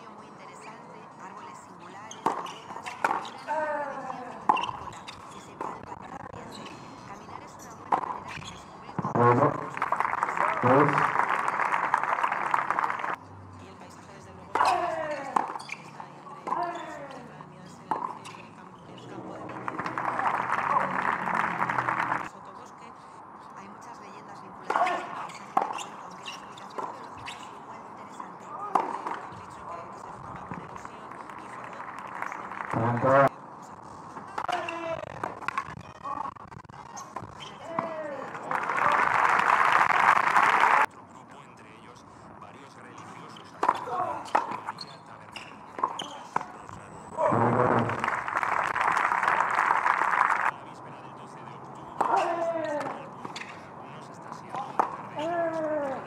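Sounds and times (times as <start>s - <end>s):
tennis ball strikes and bounces: 2.2s - 3.4s, 7.4s - 10.0s, 16.2s - 20.4s, 24.6s - 33.3s, 45.7s - 46.6s, 51.9s - 53.7s, 54.3s - 55.8s
spectator applause: 9.4s - 13.2s, 19.6s - 22.3s, 38.3s - 40.9s, 47.3s - 50.5s.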